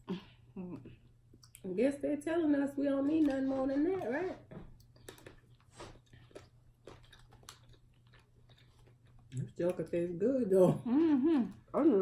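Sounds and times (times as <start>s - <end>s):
chewing and wet mouth clicks: 1.3s - 1.7s, 4.8s - 10.0s.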